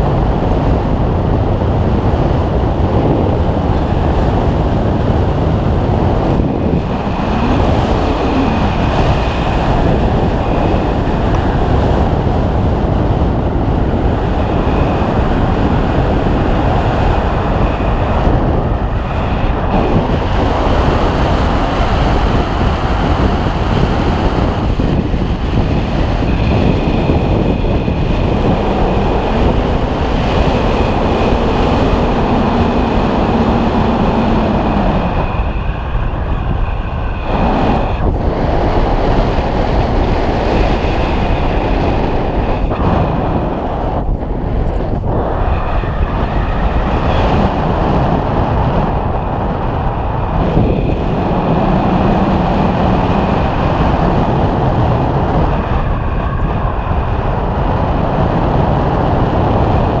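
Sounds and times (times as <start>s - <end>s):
wind rushing over microphone: 0.0s - 60.0s.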